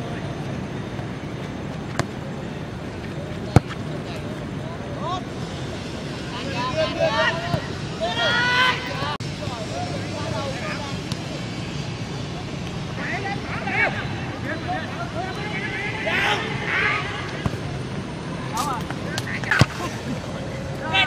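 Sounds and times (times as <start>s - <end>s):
players shouting: 2.0s - 9.2s, 13.0s - 21.0s.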